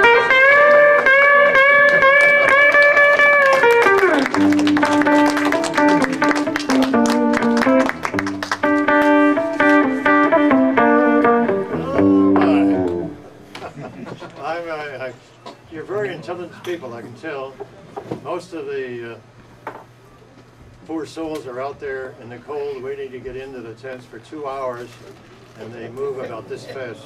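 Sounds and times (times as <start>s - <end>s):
electric guitar through amplifier: 0.0s - 13.7s.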